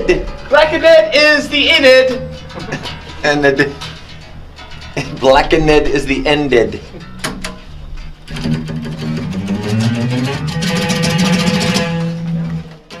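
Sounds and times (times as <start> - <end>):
guitar strumming chords: 0.0 - 13.0.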